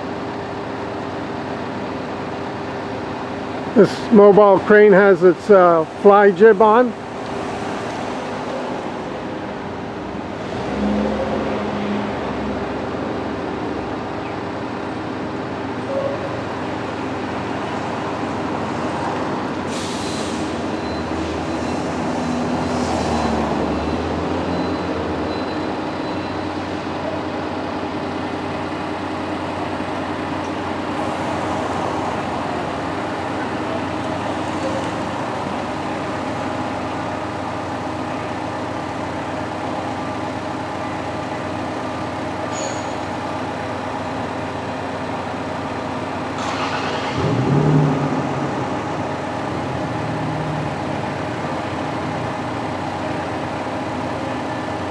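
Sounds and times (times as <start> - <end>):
city street traffic: 0.0 - 54.9
heavy diesel engine running: 0.0 - 54.9
vehicle passing: 10.4 - 13.4.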